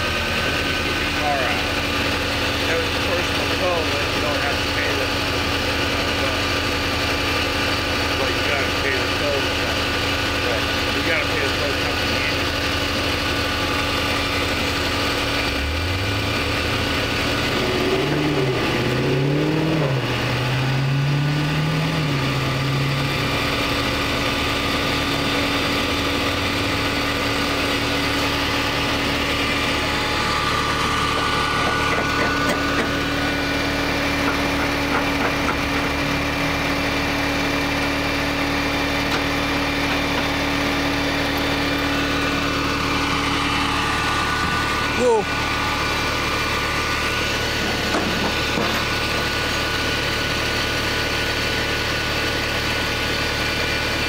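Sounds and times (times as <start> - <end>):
second engine revving: 0.0 - 54.0
vehicle engine idling: 0.0 - 54.0.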